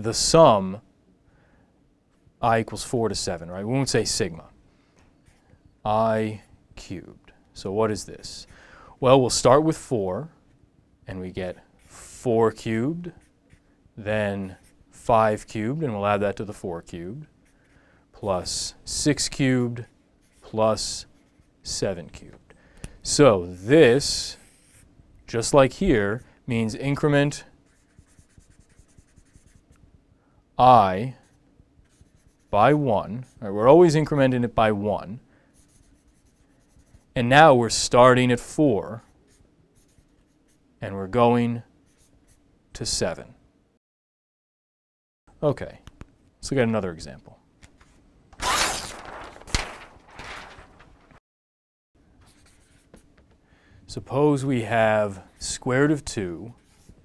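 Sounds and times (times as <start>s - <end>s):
marker writing on paper: 20.2s - 20.5s, 21.1s - 21.6s, 24.4s - 24.9s, 27.6s - 29.8s, 31.2s - 32.6s, 35.6s - 37.1s, 39.3s - 40.6s, 41.9s - 42.4s, 52.2s - 53.1s, 56.6s - 57.0s.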